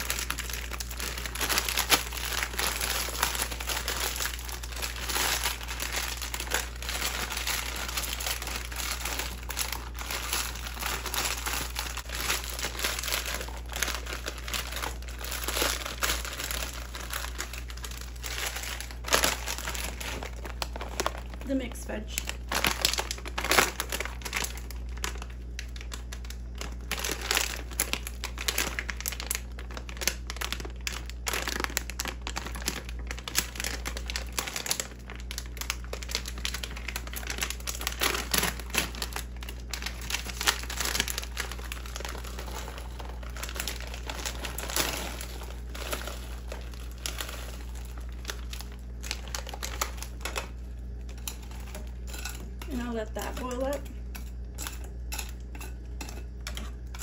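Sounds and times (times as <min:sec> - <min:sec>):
plastic bag crinkling: 0:00.0 - 0:57.0.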